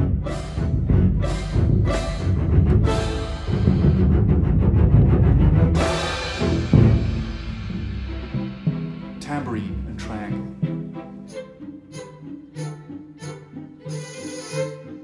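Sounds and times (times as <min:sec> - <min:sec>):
orchestral bass drum: 0:00.0 - 0:11.0
string accompaniment: 0:00.0 - 0:15.0.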